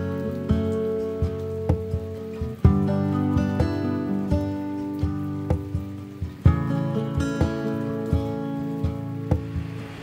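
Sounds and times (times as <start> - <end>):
faint rain patter: 0.0 - 10.0
plucked acoustic guitar: 0.0 - 10.0.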